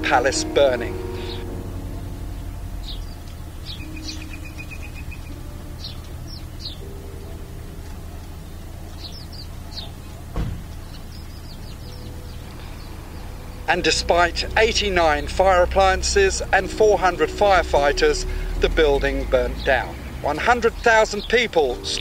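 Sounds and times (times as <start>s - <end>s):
small birds chirping: 0.0s - 22.0s
steady low rumble: 0.0s - 22.0s
thump: 10.3s - 10.8s.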